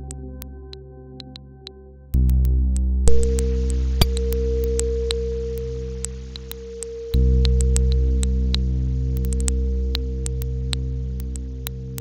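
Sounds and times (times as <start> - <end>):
low drone: 2.5 - 12.0
steady pure tone: 3.0 - 12.0
short high pings and ticks: 3.1 - 9.6.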